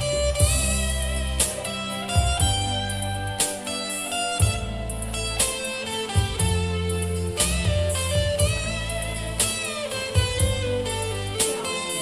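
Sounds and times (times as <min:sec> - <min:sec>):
sustained low bass line: 0:00.0 - 0:03.4, 0:04.4 - 0:05.5, 0:06.2 - 0:11.6
electric guitar chords: 0:00.0 - 0:12.0
keyboard playing: 0:00.0 - 0:12.0.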